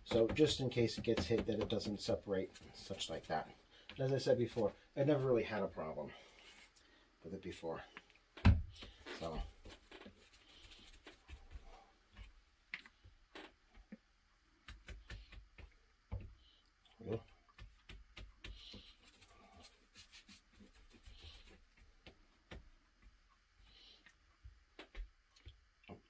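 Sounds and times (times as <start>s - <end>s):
brush spreading glue: 17.6s - 22.2s.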